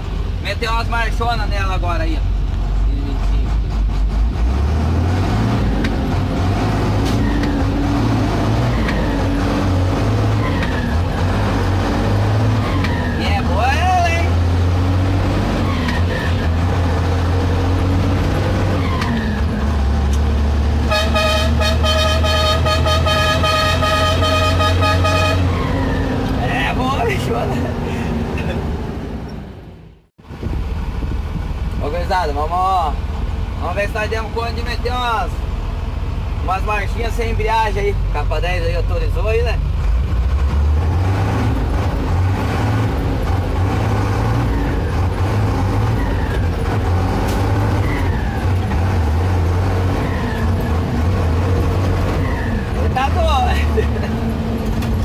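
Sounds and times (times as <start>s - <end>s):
truck engine shifting gears: 0.0s - 55.0s
truck horn: 20.8s - 25.9s.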